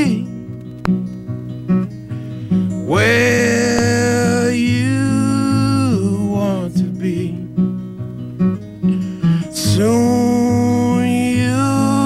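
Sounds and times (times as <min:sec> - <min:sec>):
acoustic guitar playing: 0:00.0 - 0:12.0.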